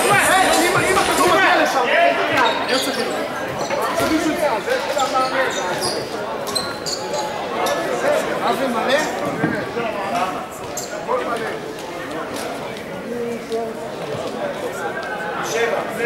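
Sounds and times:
players calling and talking: 0:00.0 - 0:16.0.

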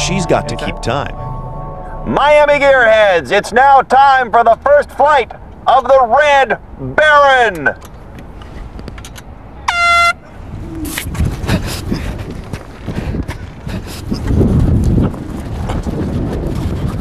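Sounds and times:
air horn blast: 0:00.0 - 0:03.5.

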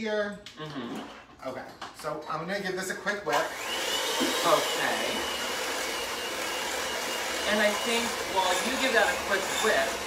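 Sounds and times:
electric mixer whining: 0:03.3 - 0:10.0.

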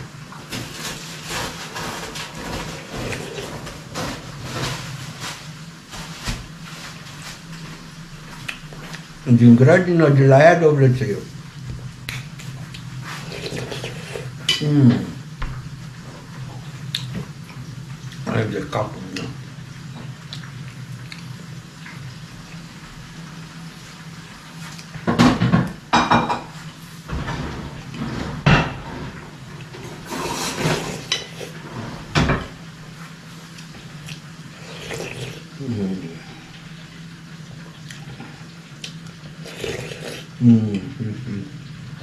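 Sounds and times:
slurping soup: 0:13.0 - 0:14.4, 0:29.9 - 0:31.8, 0:34.5 - 0:35.6, 0:39.4 - 0:40.4.

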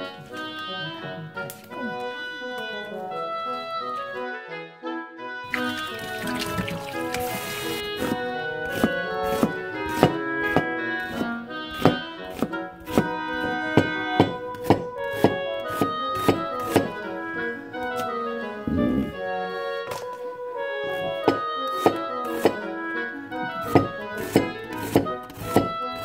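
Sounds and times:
background music: 0:00.0 - 0:26.0
tap water running into bowl: 0:05.5 - 0:07.8
knife slicing onion on board: 0:07.1 - 0:17.0, 0:20.9 - 0:22.6, 0:23.4 - 0:26.0.

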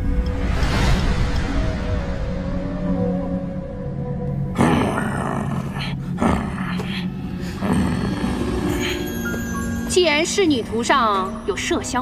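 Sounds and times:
man growling like an animal: 0:04.5 - 0:06.9, 0:07.6 - 0:08.7.

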